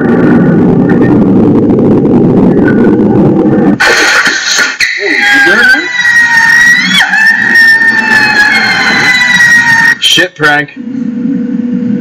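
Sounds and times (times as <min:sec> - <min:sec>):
man's high-pitched wail: 0:05.1 - 0:10.0.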